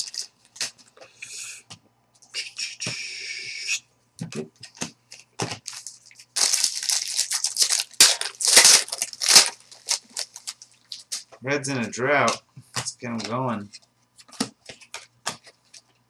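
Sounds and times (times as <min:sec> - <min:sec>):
foil wrappers tearing and crinkling: 0:00.0 - 0:00.7, 0:05.6 - 0:11.3.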